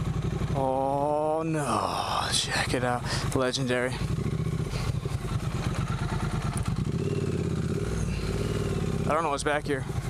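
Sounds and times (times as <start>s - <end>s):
motorcycle engine at low revs: 0.0s - 10.0s.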